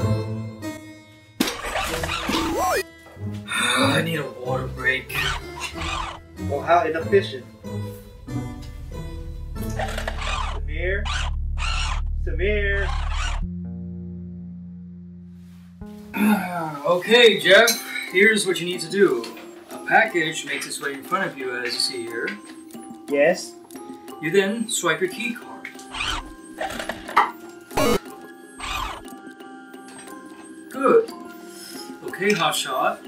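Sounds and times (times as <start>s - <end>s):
background music: 0.0s - 33.0s
card reader buzz: 27.8s - 28.0s.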